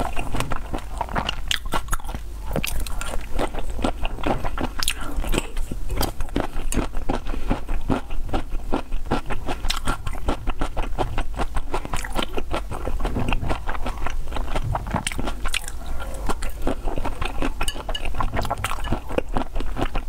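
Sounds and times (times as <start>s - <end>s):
wet chewing mouth clicks: 0.0s - 20.0s.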